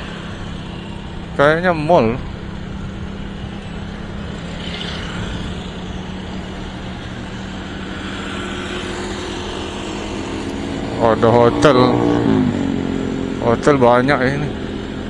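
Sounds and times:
motorbike engine hum: 0.0 - 15.0
wind and road noise: 0.0 - 15.0.

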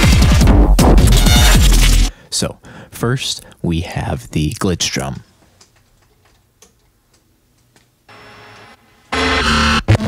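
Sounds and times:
glitchy synth drum sounds: 0.0 - 2.1.

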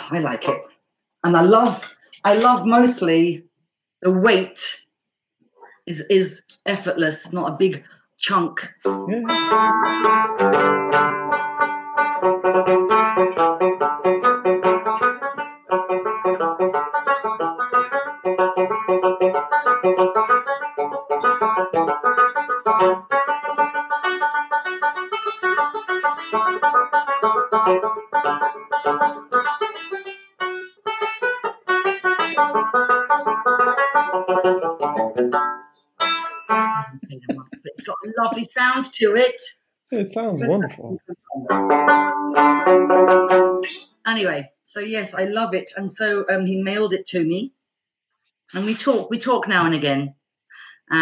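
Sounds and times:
banjo picking a fast tune: 8.2 - 39.3, 41.4 - 44.4, 48.6 - 50.0.

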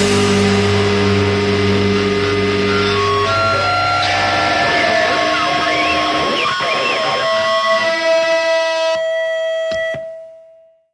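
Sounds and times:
electric guitar feedback: 0.0 - 10.4.

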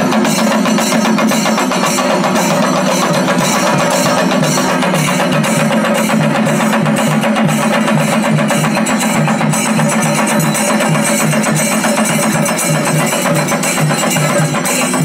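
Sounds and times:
drums beaten with sticks: 0.0 - 15.0.

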